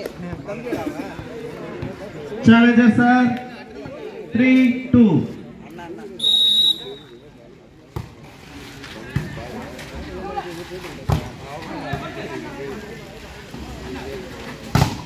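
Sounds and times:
voices chattering: 0.0 - 15.0.

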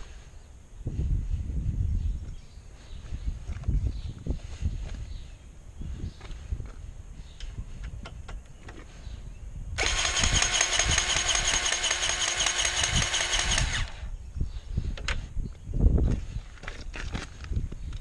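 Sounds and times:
grease gun motor running: 9.8 - 14.1.

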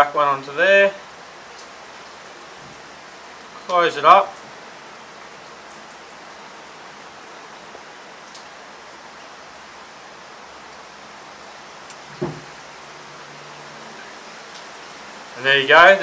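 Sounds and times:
steady background hiss: 0.0 - 16.0
short knock: 12.1 - 12.5.

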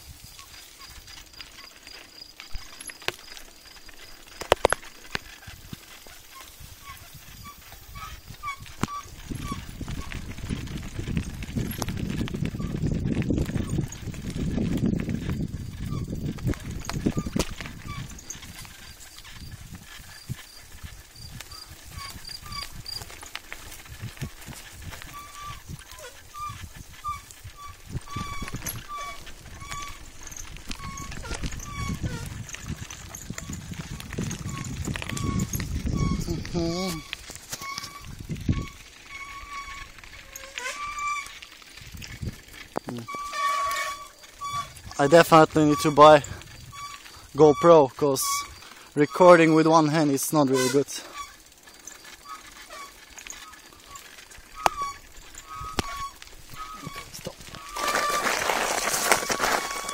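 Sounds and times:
bicycle tyres crunching gravel: 0.0 - 59.9
bike rattling over bumps: 0.0 - 59.9
wind on microphone: 5.4 - 41.2, 41.8 - 47.6, 54.5 - 59.9.

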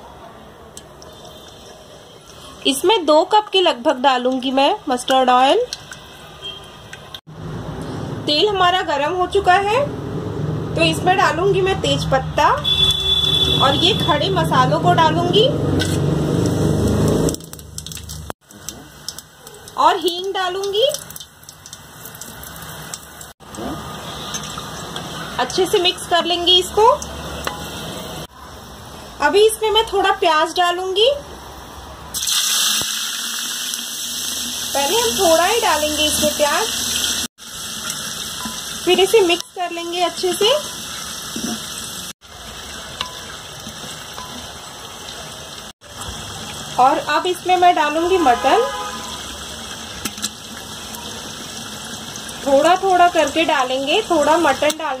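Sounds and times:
spices sizzling in hot oil: 15.8 - 30.8, 32.1 - 55.0.

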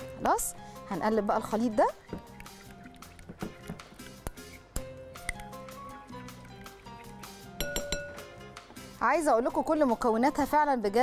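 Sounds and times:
background music: 0.0 - 11.0
metal utensil clinking glass bowl: 7.5 - 8.4.

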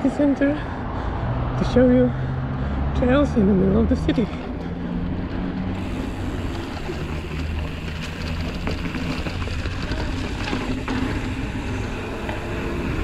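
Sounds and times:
bike clicks and rattles: 4.2 - 13.0
bike tyres rumbling on brick: 5.3 - 13.0.

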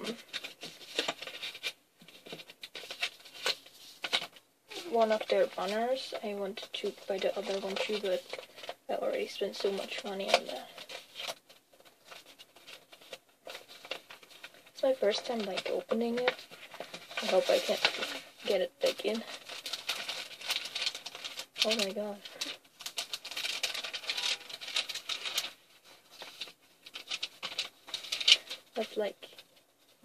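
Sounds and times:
plastic bag crinkling: 0.0 - 29.5.

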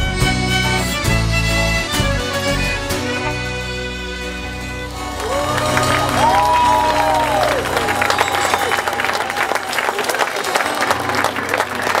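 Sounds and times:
audience applauding: 4.9 - 12.0.

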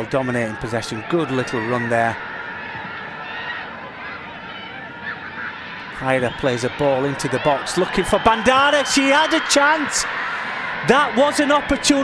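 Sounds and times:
players shouting: 0.0 - 12.0.

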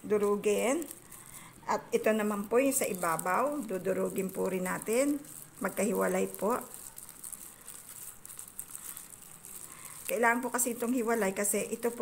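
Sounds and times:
plastic gloves crinkling: 0.0 - 12.0.

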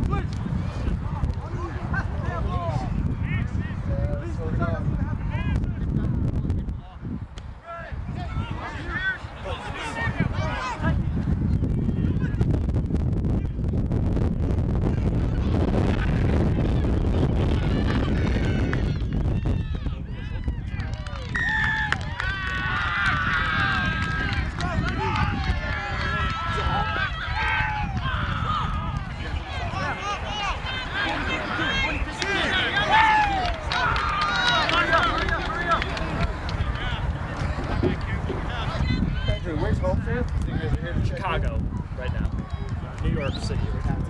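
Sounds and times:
crowd voices talking and calling: 0.0 - 44.0
wind buffeting microphone: 0.0 - 44.0
low rumble: 12.5 - 22.1.

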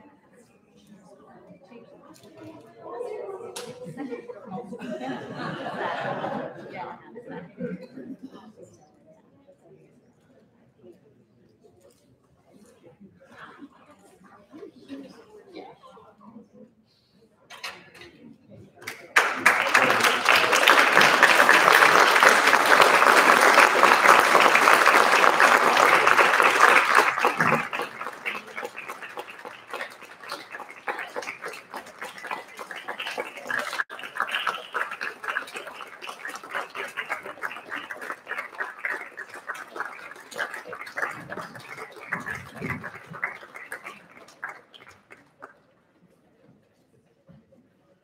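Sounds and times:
audience applauding: 18.9 - 45.3.

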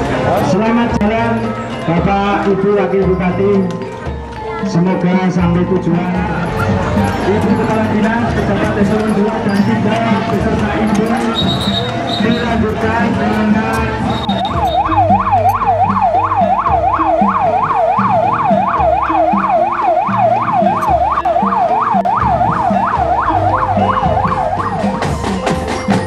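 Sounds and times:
marching drum band playing: 5.3 - 26.0
police siren yelping: 11.0 - 26.0.

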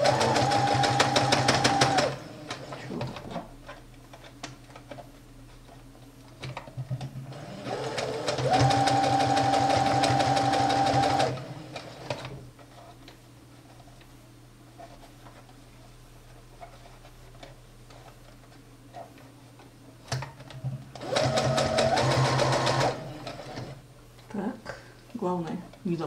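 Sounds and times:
sewing machine stitching: 0.0 - 3.0, 7.3 - 12.4, 21.0 - 23.8.

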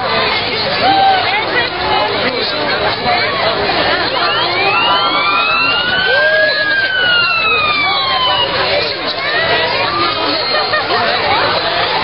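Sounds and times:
crowd chatter: 0.0 - 12.0
emergency siren wailing: 4.0 - 10.3.

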